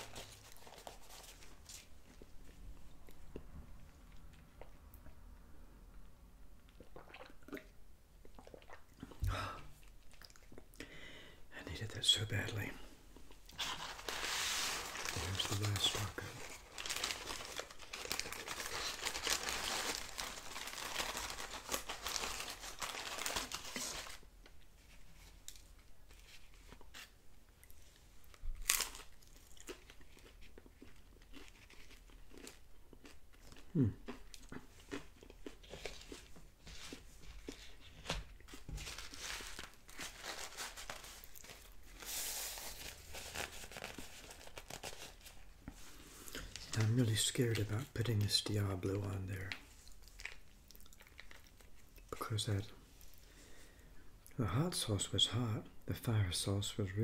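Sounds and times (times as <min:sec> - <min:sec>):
paper packaging crinkling and tearing: 0:00.0 - 0:02.0, 0:13.5 - 0:24.3, 0:28.3 - 0:32.6, 0:35.6 - 0:52.6
person saying hmm: 0:33.7 - 0:34.0.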